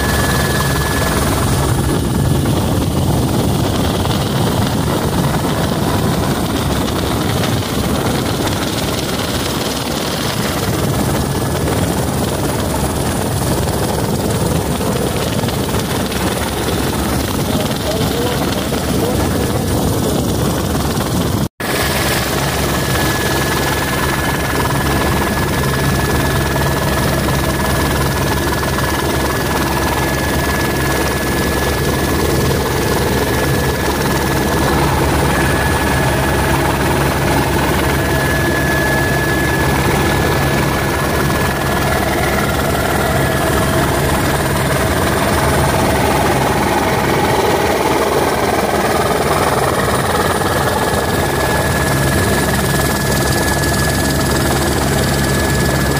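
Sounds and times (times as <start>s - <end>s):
helicopter engine and rotor noise: 0.0s - 55.9s
steady high whine: 0.0s - 55.9s.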